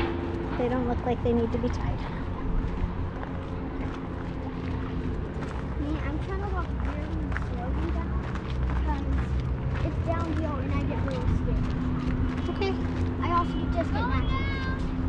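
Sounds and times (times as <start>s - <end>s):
steady low rumble: 0.0s - 14.1s
footsteps on dirt and rock trail: 0.0s - 15.0s.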